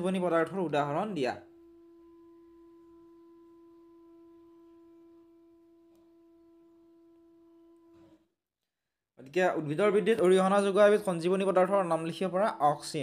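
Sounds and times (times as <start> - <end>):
faint steady tone: 1.2 - 8.2.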